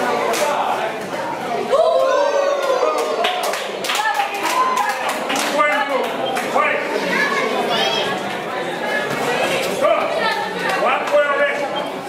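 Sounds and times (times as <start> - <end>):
young voices shouting: 1.6 - 5.2
sharp claps: 3.0 - 6.5.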